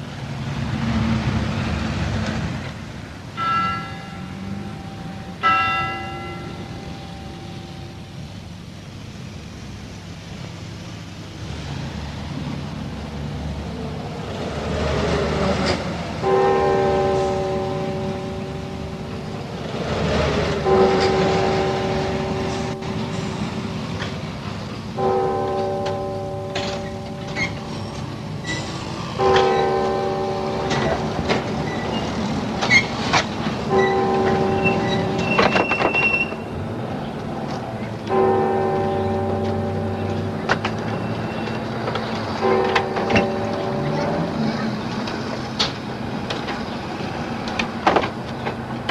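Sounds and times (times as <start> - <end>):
street traffic: 0.0 - 48.9
tower clock bell ringing: 3.3 - 8.7, 16.2 - 19.6, 20.5 - 24.1, 24.9 - 28.6, 29.2 - 32.3, 33.6 - 36.8, 38.1 - 45.0
long held chords: 3.4 - 8.9, 16.2 - 31.7, 36.3 - 41.4, 42.4 - 45.0.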